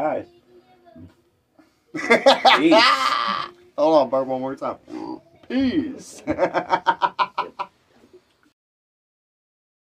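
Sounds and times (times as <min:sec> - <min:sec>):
man laughing: 0:02.0 - 0:03.5, 0:05.8 - 0:07.7.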